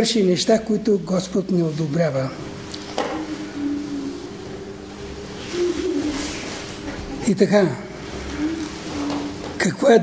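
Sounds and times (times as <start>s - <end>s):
pigeon cooing: 2.4s - 9.6s.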